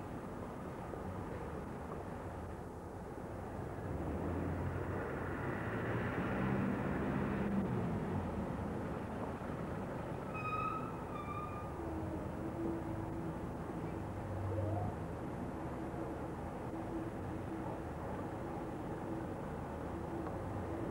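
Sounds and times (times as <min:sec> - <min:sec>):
street traffic: 0:00.0 - 0:20.9
lorry diesel engine rumbling: 0:03.5 - 0:20.9.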